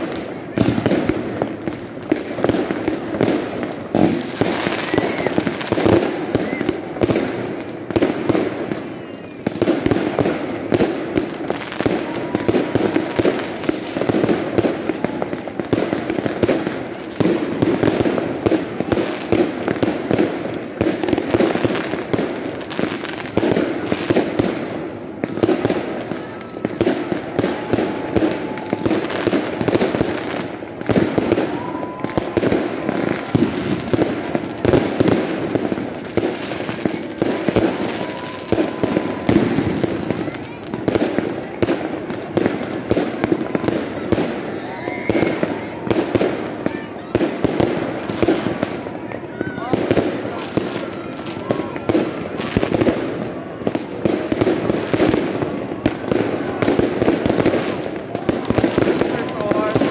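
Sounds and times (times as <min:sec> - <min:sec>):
fireworks bangs and crackles: 0:00.0 - 0:59.9
firework whistles: 0:04.1 - 0:07.4, 0:08.3 - 0:17.8, 0:25.3 - 0:40.5.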